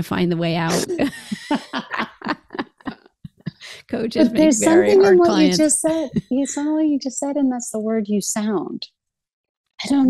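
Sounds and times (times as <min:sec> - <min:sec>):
woman laughing softly: 0:00.7 - 0:06.6.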